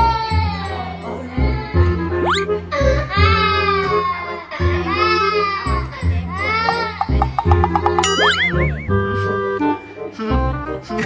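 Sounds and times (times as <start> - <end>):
light background music: 0.0 - 11.0
toddler wailing: 1.6 - 7.2
cartoon boing sound effect: 6.8 - 9.2.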